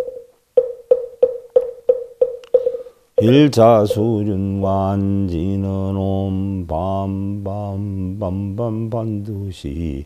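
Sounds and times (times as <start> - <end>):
hollow wooden knocks: 0.0 - 3.3.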